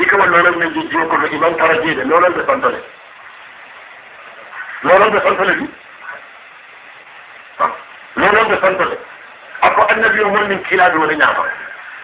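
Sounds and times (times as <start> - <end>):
recording hiss: 0.0 - 12.0.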